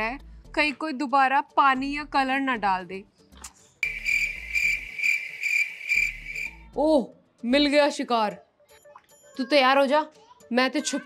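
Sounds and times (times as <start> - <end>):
cricket chirping: 3.8 - 6.6.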